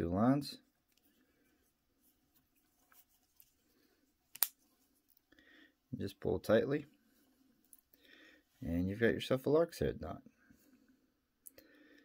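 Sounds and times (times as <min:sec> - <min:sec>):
nylon cord handling: 0:00.8 - 0:05.3.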